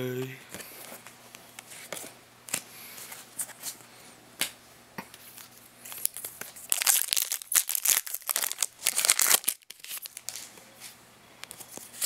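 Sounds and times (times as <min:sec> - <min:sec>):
foil wrapper crinkling and tearing: 0:05.9 - 0:10.4.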